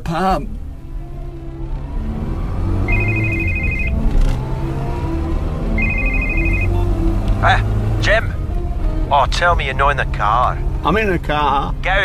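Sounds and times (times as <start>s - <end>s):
car engine humming: 0.0s - 12.0s
phone ringing: 2.9s - 4.0s, 5.8s - 6.8s.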